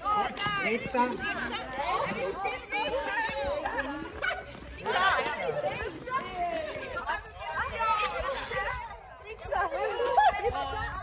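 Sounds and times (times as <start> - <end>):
group babble outdoors: 0.0 - 11.0.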